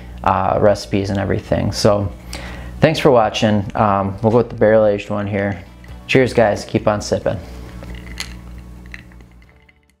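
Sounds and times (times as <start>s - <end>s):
background music with held notes: 1.4s - 10.0s.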